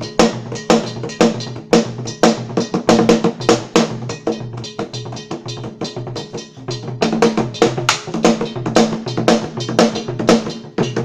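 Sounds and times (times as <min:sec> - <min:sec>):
drums in quick rhythm: 0:00.0 - 0:11.0
struck bell: 0:00.0 - 0:11.0.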